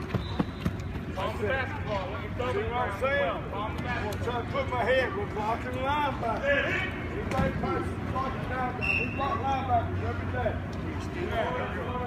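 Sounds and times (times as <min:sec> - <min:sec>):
men talking and calling out: 0:01.0 - 0:12.0.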